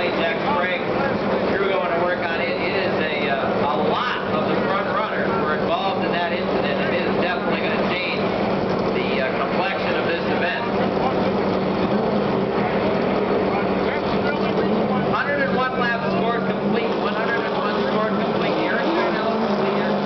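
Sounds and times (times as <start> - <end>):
public-address announcer voice: 0.0 - 11.6, 13.5 - 20.0
race truck engines: 0.0 - 20.0.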